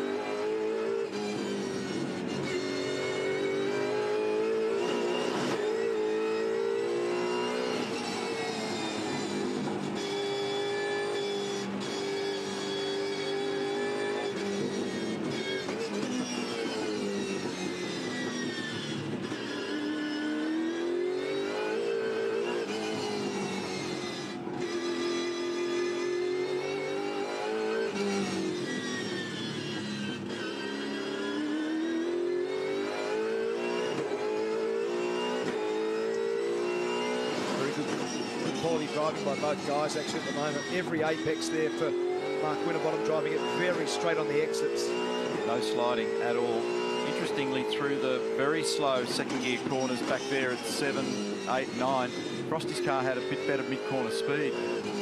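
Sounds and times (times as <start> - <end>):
race car engine revving: 0.0 - 55.0.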